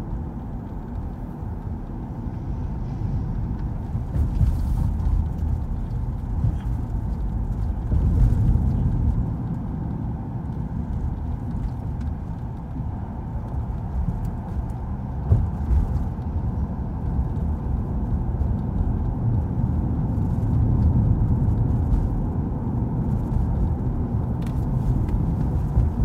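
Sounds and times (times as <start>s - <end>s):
car engine and tyre rumble: 0.0s - 26.0s.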